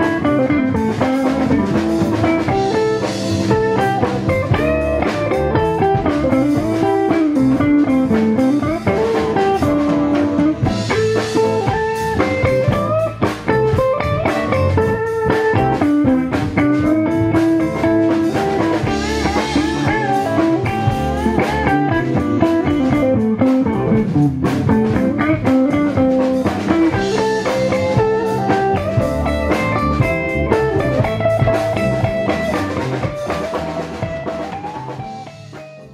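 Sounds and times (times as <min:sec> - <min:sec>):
drum kit: 0:00.0 - 0:35.9
electric guitar lead with bends: 0:00.0 - 0:35.9.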